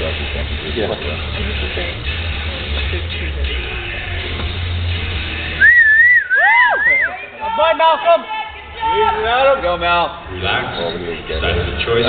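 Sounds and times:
background music with bass: 0:00.0 - 0:12.0
person whistling loudly: 0:05.6 - 0:07.3.

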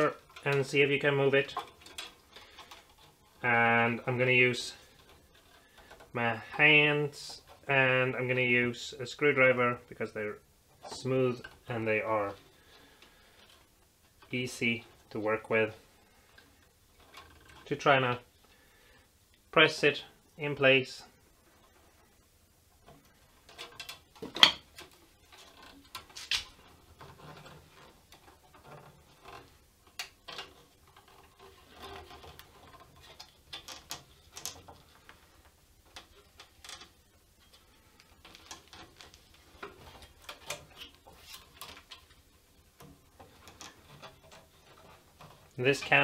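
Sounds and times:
rubbing on plastic: 0:22.8 - 0:46.0.

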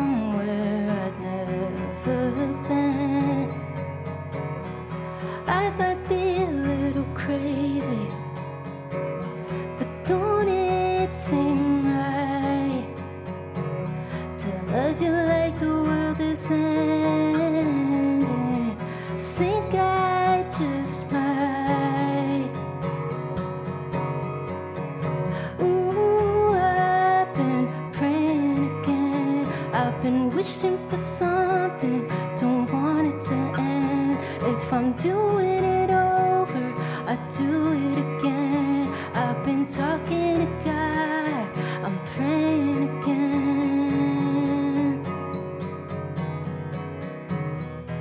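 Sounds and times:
woman singing: 0:00.0 - 0:23.2, 0:25.1 - 0:45.8
strummed acoustic guitar: 0:00.0 - 0:48.0.

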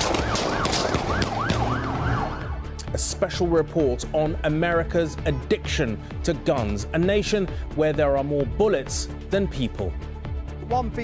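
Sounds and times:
siren yelping: 0:00.0 - 0:02.7.

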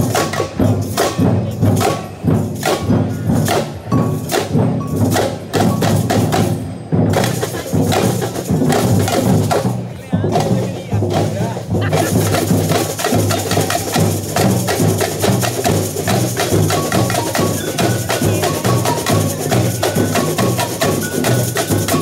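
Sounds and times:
clanking bells: 0:00.0 - 0:09.6, 0:11.9 - 0:22.0
bass drums: 0:00.0 - 0:22.0
street percussion band playing: 0:00.0 - 0:22.0
rattling shakers: 0:11.9 - 0:22.0.

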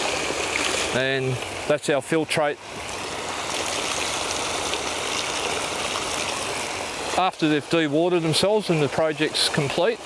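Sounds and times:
water spraying and splashing: 0:00.0 - 0:10.0.

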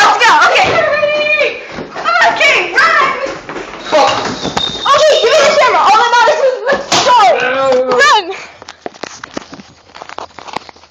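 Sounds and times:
indistinct young voices: 0:00.0 - 0:08.6.

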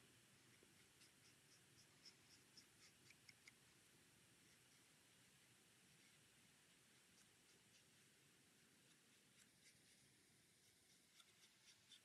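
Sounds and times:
marker strokes on card: 0:00.0 - 0:03.8, 0:05.9 - 0:08.0, 0:08.9 - 0:12.0.

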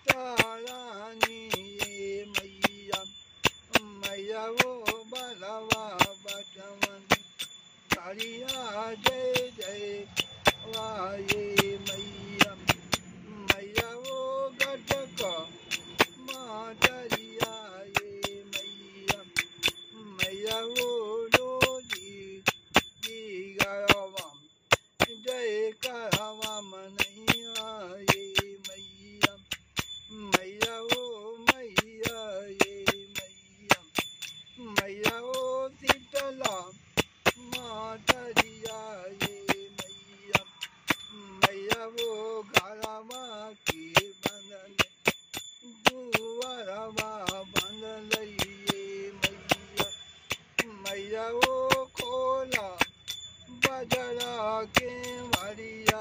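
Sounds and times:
bell-like metal percussion: 0:00.0 - 0:56.0
man singing devotional song: 0:00.0 - 0:56.0
small hand cymbals ringing: 0:00.0 - 0:56.0.

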